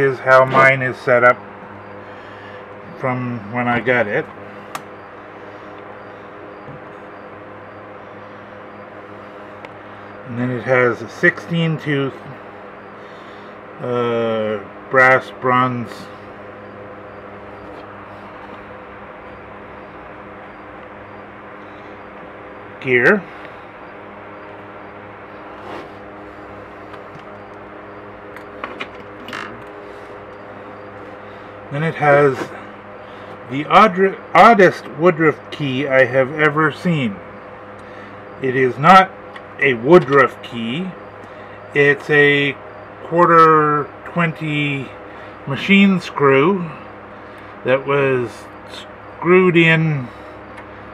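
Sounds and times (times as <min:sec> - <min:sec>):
faint steady tones: 0:00.0 - 0:50.9
low background hum: 0:00.0 - 0:50.9.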